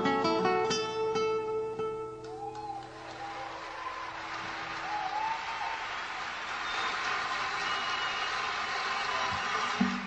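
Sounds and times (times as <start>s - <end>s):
audience applauding: 2.3s - 10.0s.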